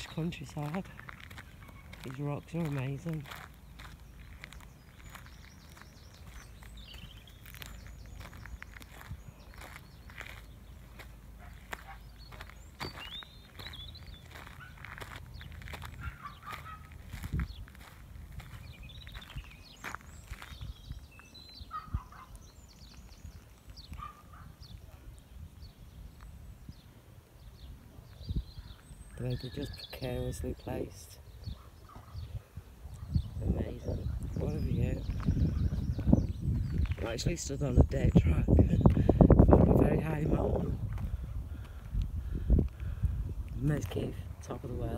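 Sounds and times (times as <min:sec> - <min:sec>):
footsteps and light clicks: 0:00.0 - 0:20.6
short bird calls: 0:03.3 - 0:17.7.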